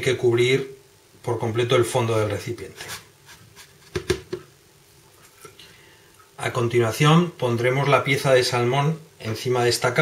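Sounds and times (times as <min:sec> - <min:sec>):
plastic container knocking on stone: 0:03.9 - 0:04.4.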